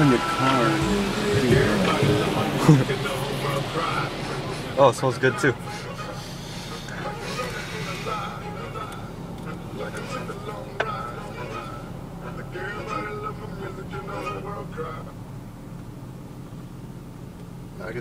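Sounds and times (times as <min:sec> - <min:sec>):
indistinct voices: 0:00.0 - 0:15.2
car wash machinery drone: 0:00.0 - 0:18.0.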